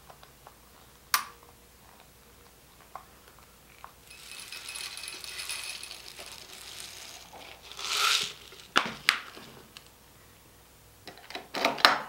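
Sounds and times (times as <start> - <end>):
small metal parts scraping and rattling: 4.0 - 9.9.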